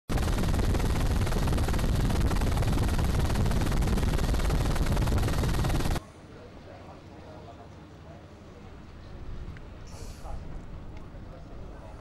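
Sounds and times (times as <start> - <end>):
helicopter rotor and engine: 0.1 - 6.0.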